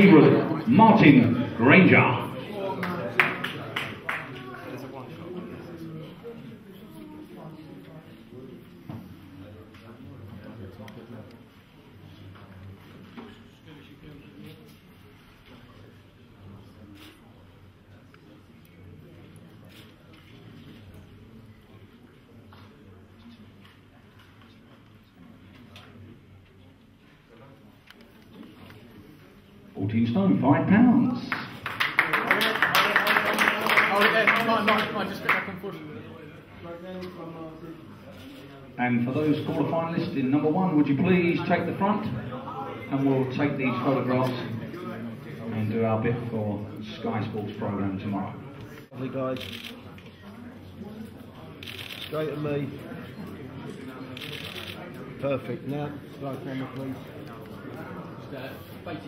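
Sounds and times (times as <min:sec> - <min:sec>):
faint background chatter: 0:00.0 - 0:59.0
murmur of voices: 0:00.0 - 0:59.0
camera shutter clicks: 0:49.4 - 0:49.8.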